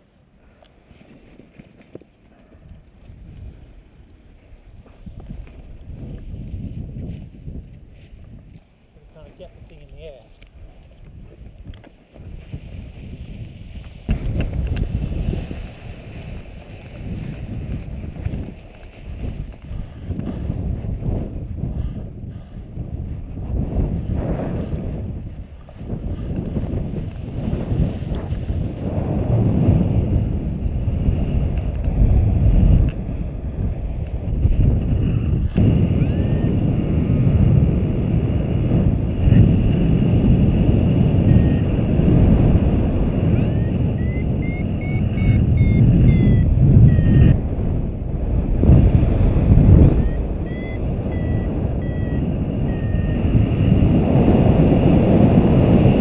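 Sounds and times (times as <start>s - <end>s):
wind buffeting microphone: 2.4s - 56.0s
short high beeps: 35.0s - 36.6s, 41.2s - 41.8s, 43.3s - 47.4s, 49.9s - 53.8s.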